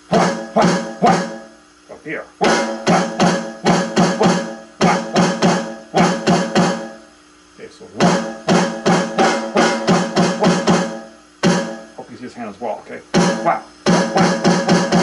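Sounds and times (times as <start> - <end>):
electronic drum pad strokes: 0.0 - 7.1, 8.0 - 12.0, 13.1 - 15.0.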